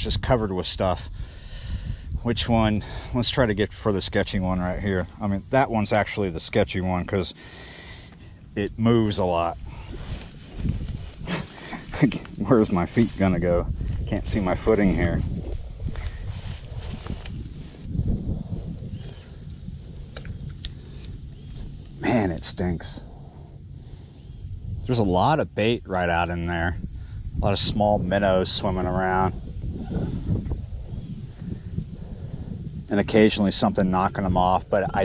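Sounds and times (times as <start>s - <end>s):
wind buffeting microphone: 0.0s - 35.0s
low uneven rumble: 0.8s - 35.0s
footsteps rustling through weeds: 9.8s - 18.0s.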